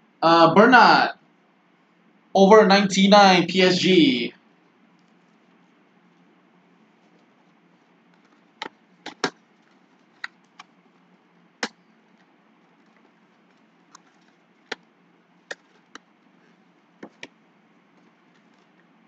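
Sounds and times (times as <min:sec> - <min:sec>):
plastic card holders clicking: 0:08.6 - 0:09.4.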